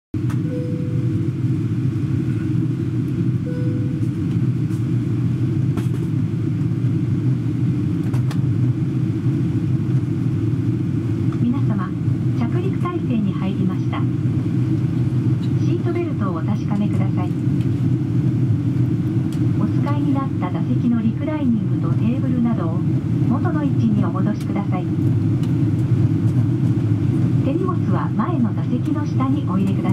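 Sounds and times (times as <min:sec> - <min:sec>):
airplane cabin roar: 0:00.2 - 0:29.9
cabin announcement over pa: 0:11.3 - 0:14.2, 0:15.4 - 0:17.5, 0:19.4 - 0:25.1, 0:27.4 - 0:29.9.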